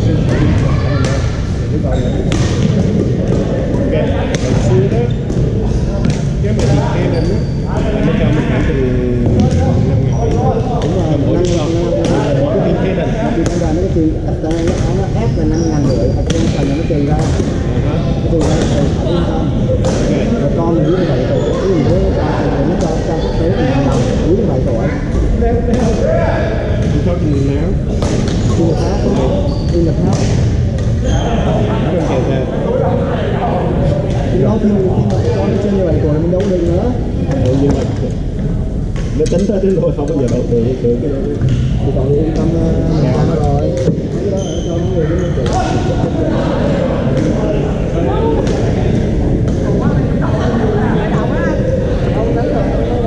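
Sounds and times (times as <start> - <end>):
sports hall background noise: 0.0 - 53.0
voices: 0.0 - 53.0.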